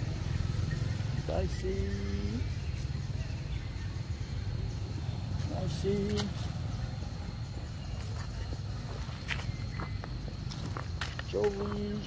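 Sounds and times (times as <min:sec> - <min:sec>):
footsteps on grass: 0:05.2 - 0:12.0.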